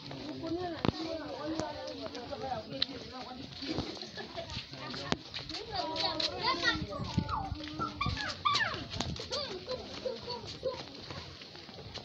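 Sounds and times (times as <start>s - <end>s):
high-pitched voices shouting: 7.1s - 10.6s.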